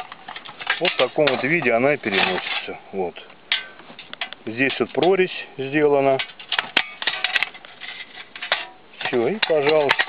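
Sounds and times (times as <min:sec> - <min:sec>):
sheet metal clicks and clinks: 0:00.0 - 0:02.8, 0:06.0 - 0:10.0.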